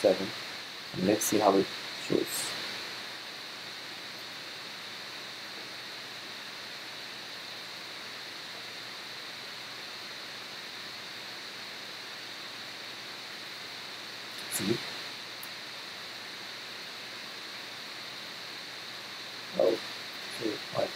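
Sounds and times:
background hiss: 0:00.0 - 0:20.9.

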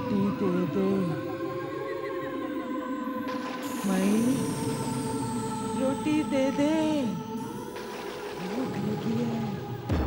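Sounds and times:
droning horror music: 0:00.0 - 0:10.0.

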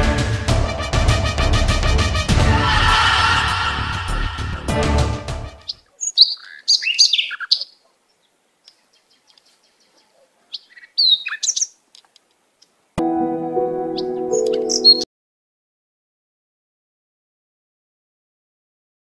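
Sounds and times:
sustained music chord: 0:00.0 - 0:05.6, 0:13.0 - 0:15.0
birds chirping: 0:05.6 - 0:12.8, 0:13.9 - 0:15.0.

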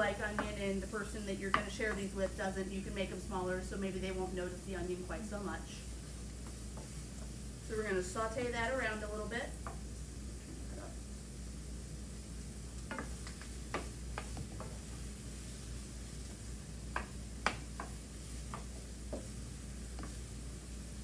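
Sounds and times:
onion sizzling in oil: 0:00.0 - 0:21.0
spoon knocking and scraping pan: 0:00.3 - 0:00.7, 0:01.5 - 0:02.1, 0:12.8 - 0:15.0, 0:16.9 - 0:20.3.

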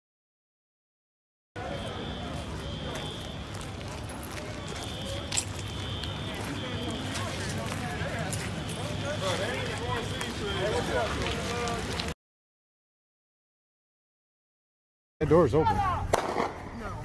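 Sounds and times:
indistinct voices: 0:01.6 - 0:12.2
outdoor background noise: 0:01.6 - 0:12.2, 0:15.2 - 0:17.0.

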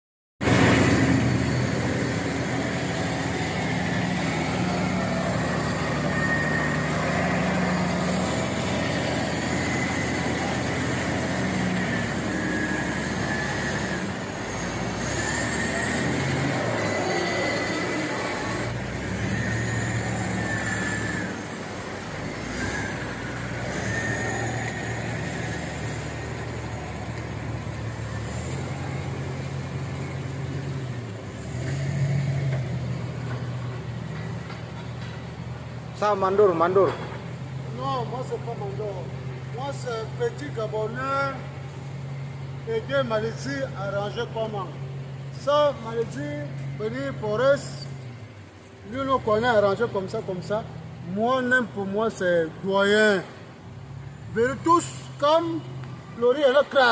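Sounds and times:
high-pitched metallic squeals: 0:00.4 - 0:32.5
truck diesel engine working: 0:00.4 - 0:56.9.

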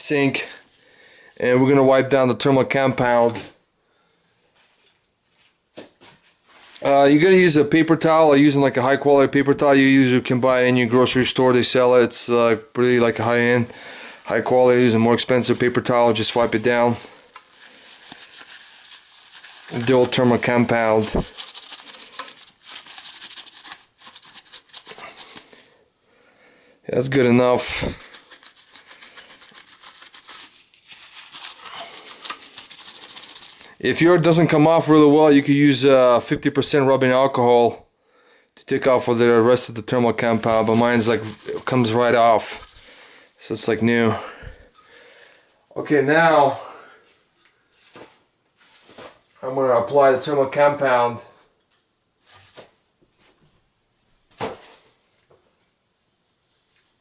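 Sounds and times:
paper towel rubbing on metal: 0:14.4 - 0:25.5, 0:27.1 - 0:33.8, 0:40.1 - 0:43.7.

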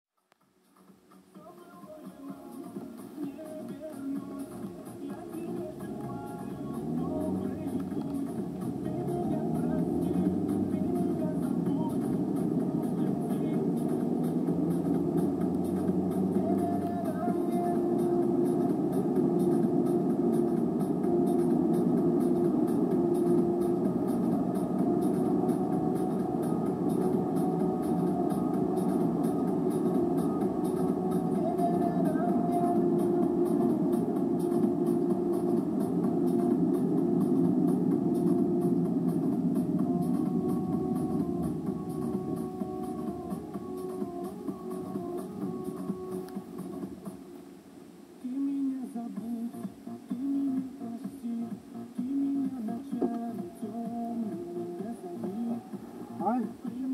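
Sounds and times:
car radio music and talk: 0:01.4 - 0:56.9
car engine and road hum: 0:04.9 - 0:47.5.

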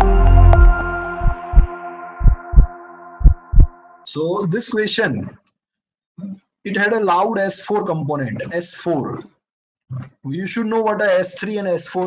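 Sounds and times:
held ambient music chord: 0:00.0 - 0:04.1
heartbeat thumps: 0:00.5 - 0:03.7.

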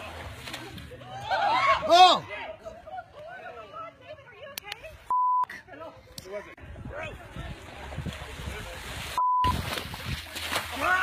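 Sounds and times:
censor bleep: 0:05.1 - 0:05.5, 0:09.2 - 0:09.6.

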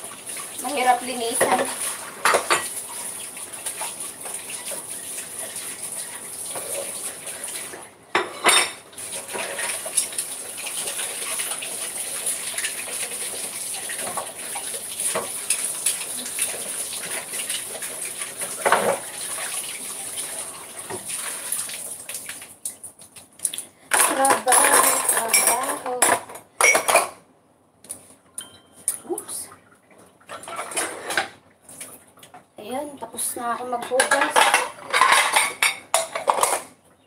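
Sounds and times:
water running in sink: 0:00.0 - 0:27.0, 0:28.8 - 0:36.6
dishes and cutlery clattering: 0:01.4 - 0:02.8, 0:08.1 - 0:10.2, 0:18.6 - 0:19.1, 0:23.9 - 0:27.2, 0:30.3 - 0:31.4, 0:33.7 - 0:36.8.

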